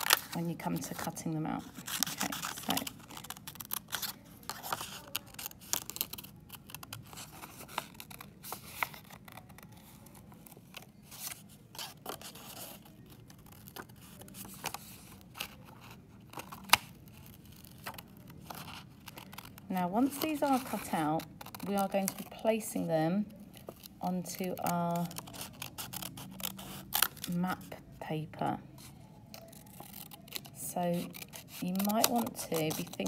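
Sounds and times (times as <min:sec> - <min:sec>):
scissors snipping paper: 0:00.0 - 0:10.1, 0:11.8 - 0:22.6, 0:23.6 - 0:27.4, 0:29.4 - 0:33.0
paper rustling: 0:00.0 - 0:22.8, 0:28.7 - 0:33.0.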